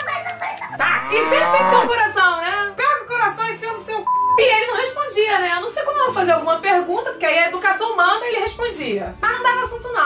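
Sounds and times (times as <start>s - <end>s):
light background music: 0.0s - 10.0s
woman's voice: 0.0s - 10.0s
cow mooing: 0.8s - 2.2s.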